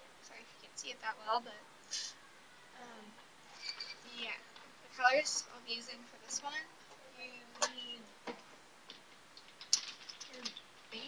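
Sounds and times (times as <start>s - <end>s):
glass bottles clicking: 9.4s - 10.8s.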